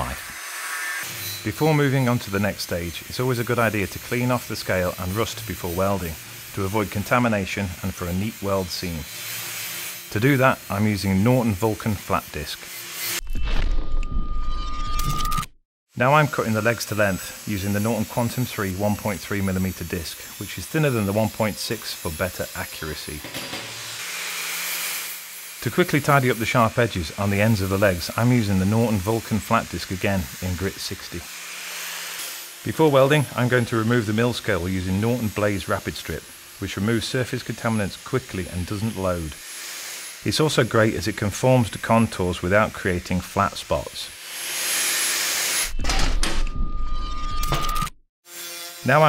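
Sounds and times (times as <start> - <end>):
cutting disc hissing in metal: 0.0 - 13.2, 16.3 - 44.1.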